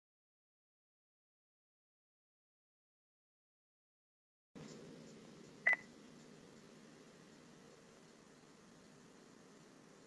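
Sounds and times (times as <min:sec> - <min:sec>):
faint room hiss: 0:04.6 - 0:10.0
short electronic beep: 0:05.7 - 0:05.9.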